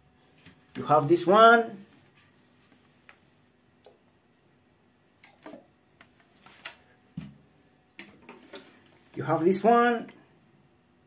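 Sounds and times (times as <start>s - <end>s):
plastic bottles clicking and knocking: 8.0s - 8.8s.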